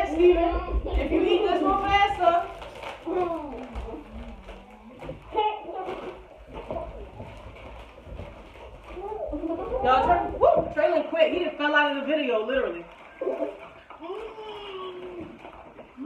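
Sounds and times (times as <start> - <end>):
children talking: 0.0 - 7.4, 8.8 - 11.7, 13.2 - 16.0.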